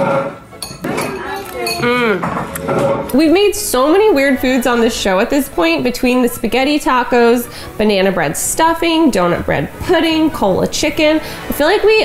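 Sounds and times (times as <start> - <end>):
cutlery clinking on plates: 0.0 - 3.2.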